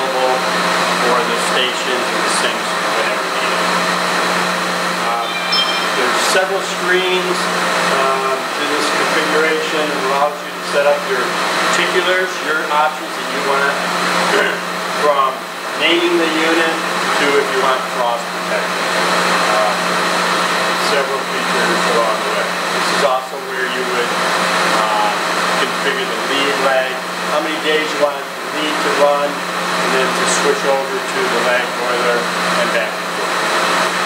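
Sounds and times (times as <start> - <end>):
boiler room equipment humming: 0.0 - 34.0
machinery whirring: 2.3 - 8.6.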